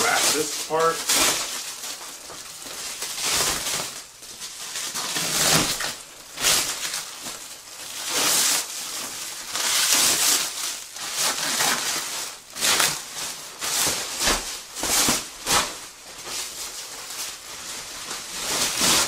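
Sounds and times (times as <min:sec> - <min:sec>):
plastic wrapping crinkling: 0:00.0 - 0:19.0.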